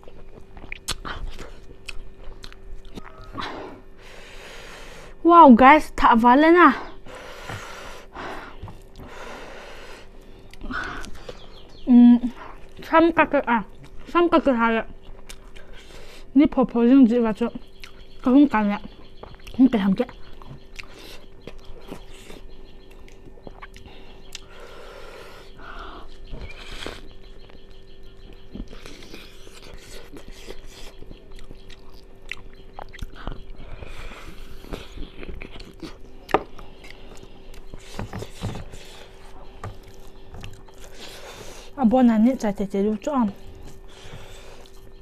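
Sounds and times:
person chewing food: 0.0s - 4.0s, 7.3s - 11.8s, 13.7s - 14.1s, 14.9s - 16.3s, 17.6s - 18.2s, 19.0s - 41.8s, 43.3s - 45.0s.

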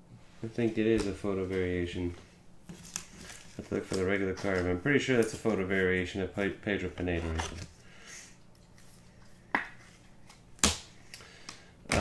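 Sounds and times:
cards snapping and tapping: 9.5s - 12.0s.

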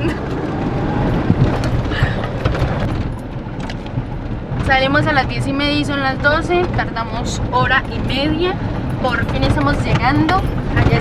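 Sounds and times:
engine and road noise: 0.0s - 11.0s
knocks and rattles: 0.0s - 11.0s.

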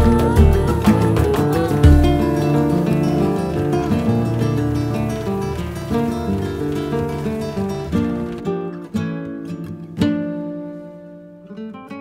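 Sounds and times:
flamenco acoustic guitar: 0.0s - 12.0s.

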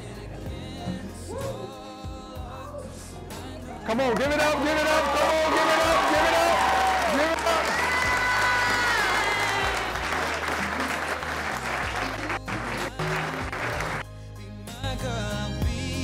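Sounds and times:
song playing: 0.0s - 16.0s
people clapping: 4.0s - 14.0s.

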